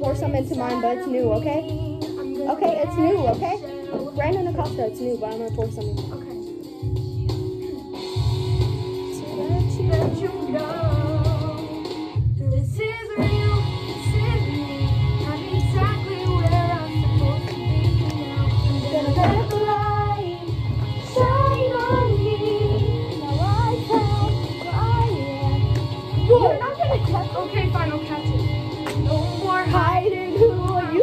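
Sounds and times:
backing track with bass beat: 0.0s - 31.0s
person singing pop melody: 0.0s - 31.0s.

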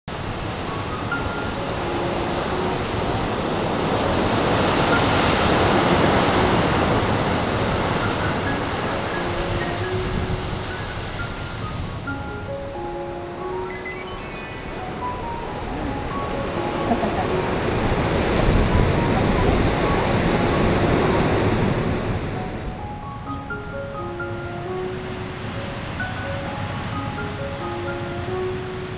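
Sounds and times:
ocean surf washing on beach: 0.1s - 28.9s
soft music with held notes: 0.1s - 28.9s.

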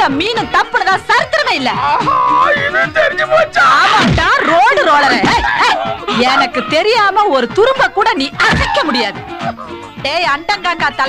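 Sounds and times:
yelping whimpering cries: 1.7s - 7.1s, 8.4s - 9.9s.

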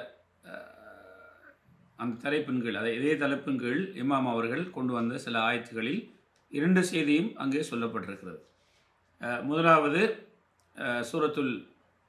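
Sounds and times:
man speaking: 0.0s - 1.4s, 2.0s - 8.4s, 9.2s - 10.2s, 10.8s - 11.6s
man's throaty vocal sound: 0.5s - 1.5s.

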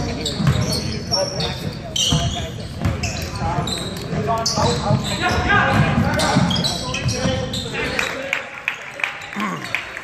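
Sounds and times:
sneakers squeaking on floor: 0.0s - 8.0s
players' voices: 0.0s - 10.0s.

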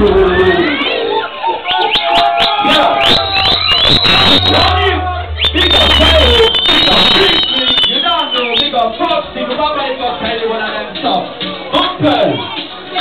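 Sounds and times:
crowd shouting: 0.7s - 7.5s
deep bass boom: 3.0s - 7.8s
high electronic siren tone: 3.1s - 7.7s
rising electronic zaps: 3.2s - 7.4s.

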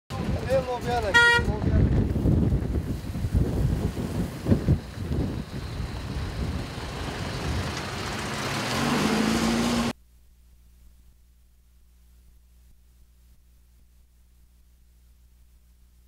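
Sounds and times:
truck driving on gravel road: 1.6s - 10.0s
engine revving up: 6.1s - 10.0s.

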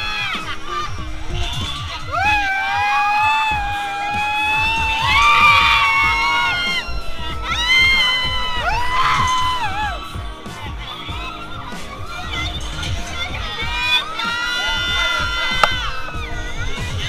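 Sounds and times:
wind on microphone: 0.0s - 14.0s, 14.7s - 17.0s
riders screaming: 0.0s - 17.0s.

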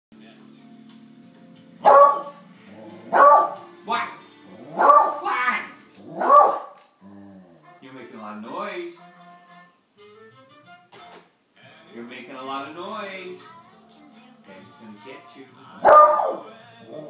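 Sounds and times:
faint background music: 0.1s - 17.0s
dog barking: 1.8s - 2.4s, 3.1s - 3.6s, 4.7s - 5.4s, 6.0s - 6.8s, 15.8s - 17.0s.

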